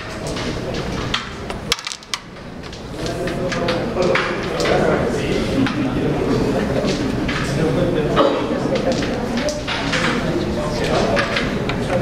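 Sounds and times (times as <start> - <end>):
striker clacking into carrom pieces: 0.2 - 4.8.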